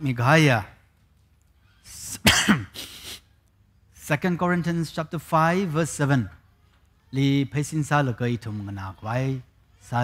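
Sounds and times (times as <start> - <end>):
man clearing his throat: 2.2 - 2.8.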